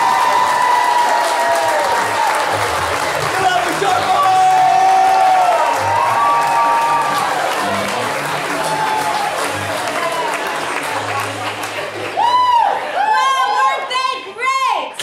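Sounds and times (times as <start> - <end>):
audience applauding and cheering: 0.0 - 13.8
music playing: 1.7 - 13.0.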